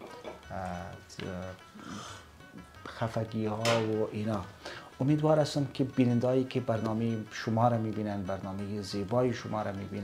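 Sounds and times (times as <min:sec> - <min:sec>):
quiet background music: 0:00.0 - 0:10.0
man speaking: 0:00.5 - 0:01.6
soft breathy hiss: 0:01.7 - 0:03.1, 0:04.5 - 0:05.0.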